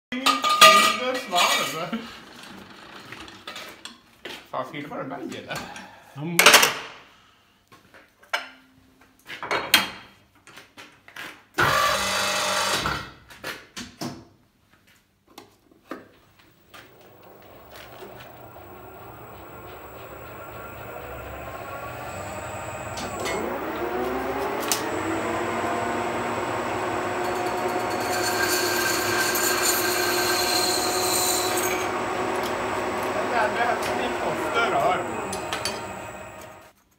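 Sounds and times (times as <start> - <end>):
lathe cutting noise: 16.4 - 36.7
metallic screech of lathe tool: 16.8 - 36.6.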